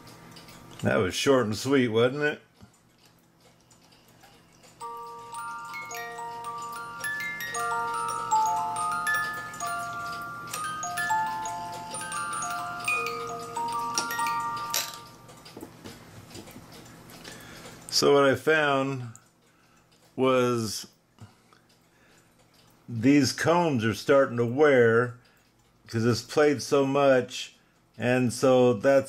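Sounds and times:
music box plucking a tune: 0:04.6 - 0:15.8.

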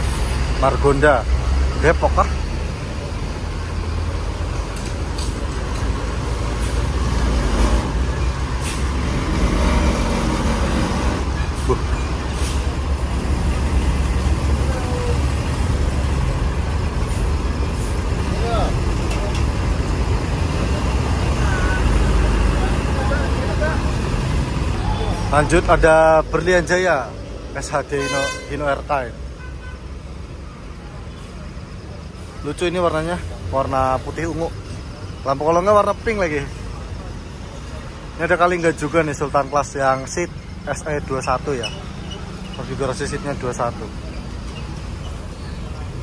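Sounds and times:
diesel engine rumble: 0:00.0 - 0:46.0.

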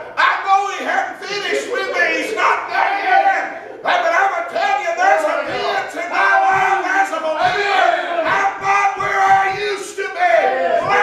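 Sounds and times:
man preaching shouting: 0:00.0 - 0:11.0.

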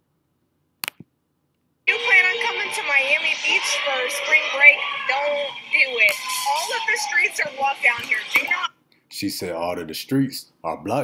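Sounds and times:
woman talking: 0:01.9 - 0:08.7.

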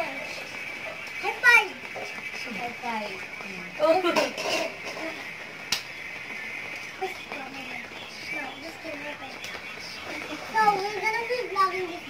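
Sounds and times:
sharp snap: 0:05.7 - 0:05.9.

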